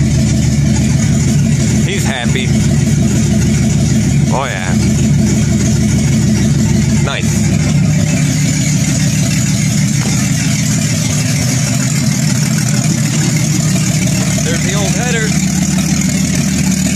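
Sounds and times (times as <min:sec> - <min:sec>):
car engine idling: 0:00.0 - 0:16.9.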